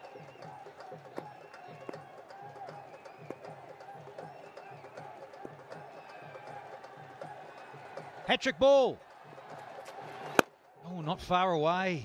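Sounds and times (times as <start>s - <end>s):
stadium crowd murmur: 0.0s - 10.8s
cricket bat striking ball: 10.2s - 10.5s.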